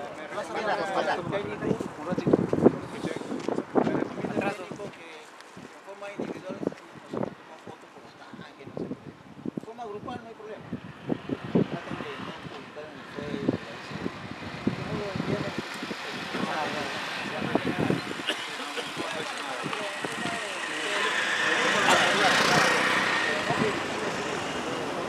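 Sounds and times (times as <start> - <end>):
men talking in a group: 0.0 - 25.0
road vehicle passing: 10.7 - 25.0.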